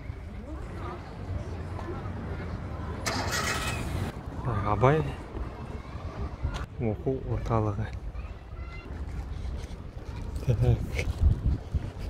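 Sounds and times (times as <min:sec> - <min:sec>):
vehicle rumble: 0:00.0 - 0:06.8.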